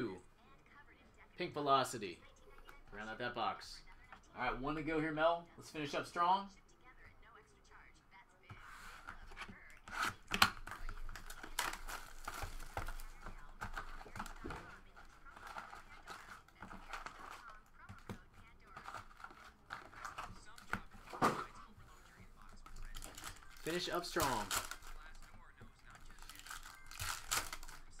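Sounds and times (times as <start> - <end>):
foil wrappers crinkling and tearing: 9.9 - 21.4, 22.4 - 28.0.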